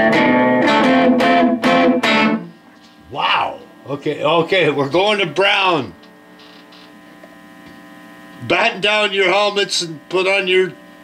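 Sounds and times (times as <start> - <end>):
guitar amplifier hum and buzz: 0.0 - 11.0.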